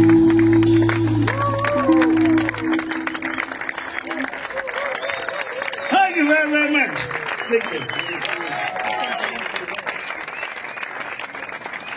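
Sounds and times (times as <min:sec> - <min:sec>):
audience applauding: 0:00.0 - 0:11.9
people talking: 0:05.9 - 0:09.8.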